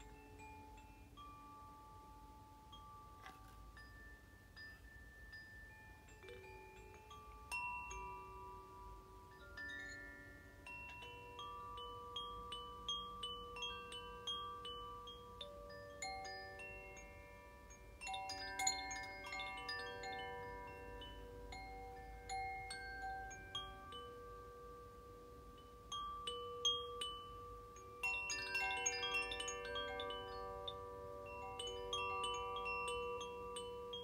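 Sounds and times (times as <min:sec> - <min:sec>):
metal chimes ringing: 0:00.0 - 0:34.0.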